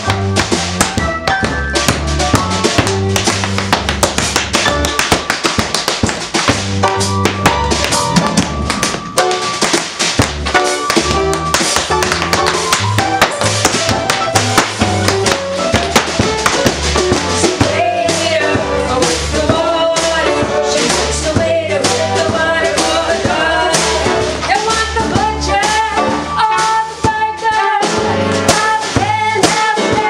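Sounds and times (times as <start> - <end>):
tap shoes on wooden floor: 0.0 - 17.6
drum kit: 0.0 - 30.0
upright bass: 0.0 - 30.0.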